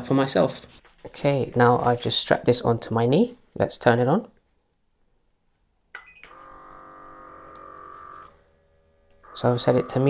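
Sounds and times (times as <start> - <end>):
small motor humming: 6.3 - 10.0.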